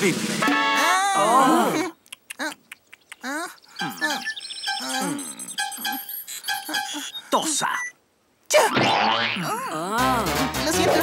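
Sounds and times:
cartoon boing: 0:08.6 - 0:09.6.

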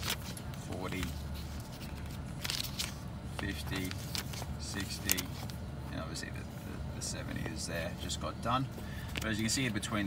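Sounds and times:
paper pages flipping: 0:00.0 - 0:05.6.

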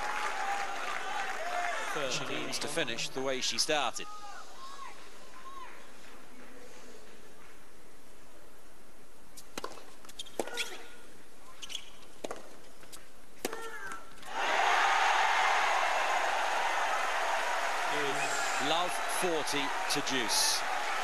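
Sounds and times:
crowd applauding: 0:00.0 - 0:02.9, 0:14.3 - 0:21.0
quiet stadium crowd: 0:00.0 - 0:21.0.

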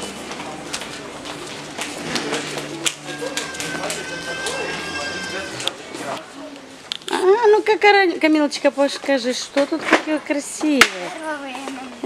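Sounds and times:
indistinct voices: 0:00.0 - 0:07.4
footsteps and clicks: 0:00.1 - 0:06.2
held high tone: 0:02.7 - 0:06.0.

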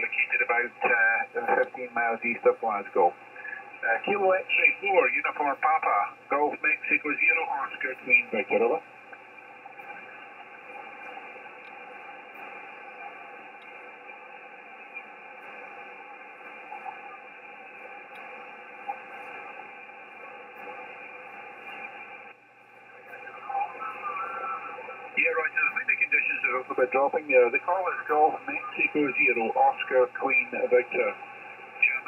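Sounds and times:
faint radio voice: 0:00.0 - 0:08.8, 0:23.1 - 0:31.2, 0:31.8 - 0:32.0
shortwave receiver hiss: 0:00.0 - 0:32.0.

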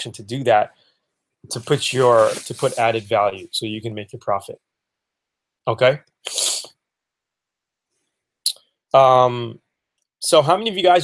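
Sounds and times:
man's sharp burst of breath: 0:06.3 - 0:06.7.

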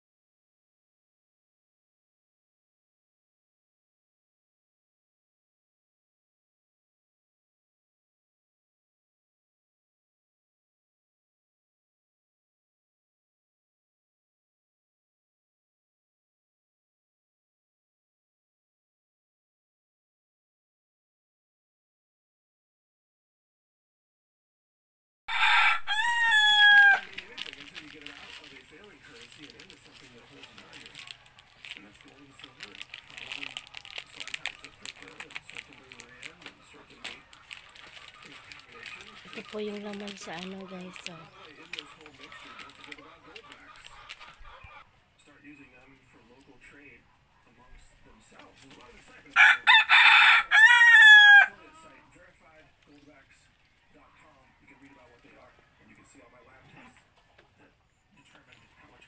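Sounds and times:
rooster crowing: 0:25.3 - 0:27.2, 0:49.4 - 0:51.9.

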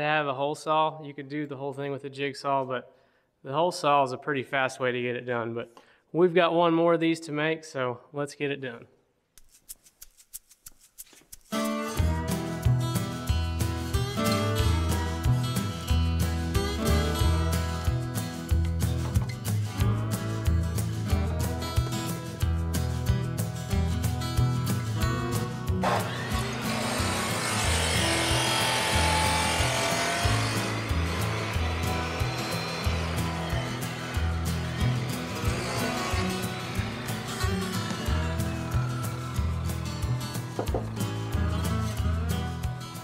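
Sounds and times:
cut-off saw cutting plastic pipe: 0:25.3 - 0:41.5.

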